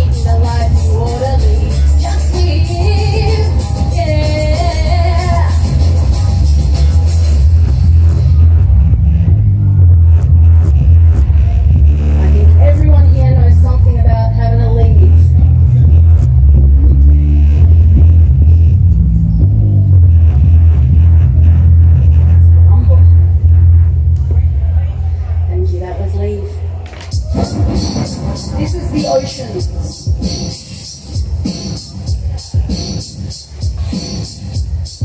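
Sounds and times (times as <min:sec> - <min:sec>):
woman singing into a microphone: 0:00.0 - 0:05.7
loud bass line: 0:00.0 - 0:35.0.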